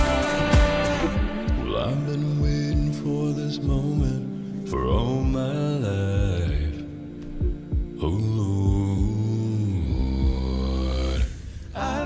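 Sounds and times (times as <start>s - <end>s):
beatboxed kick-drum thumps: 0.0s - 4.3s, 4.9s - 6.8s, 7.4s - 11.3s
held vocal chord: 0.0s - 7.2s, 7.9s - 12.0s
deep bass voice: 0.0s - 12.0s.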